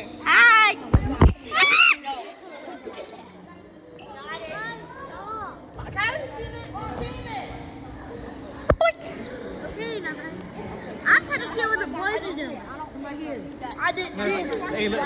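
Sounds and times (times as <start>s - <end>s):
children chattering and calling out: 0.0s - 15.0s.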